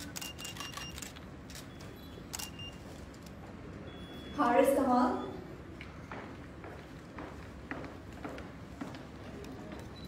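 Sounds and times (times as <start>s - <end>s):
camera shutters clicking: 0.0s - 1.7s, 2.3s - 2.6s
hall background noise: 0.0s - 10.0s
short high beeps: 0.2s - 2.9s, 3.9s - 5.5s.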